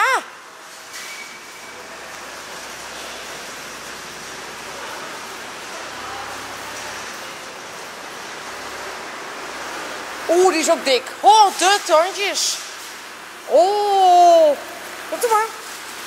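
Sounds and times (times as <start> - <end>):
parking garage rushing noise: 0.0 - 16.0.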